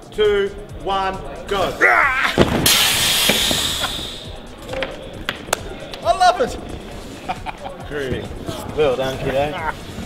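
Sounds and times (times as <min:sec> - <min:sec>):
air ram venting hiss: 0:02.4 - 0:04.6.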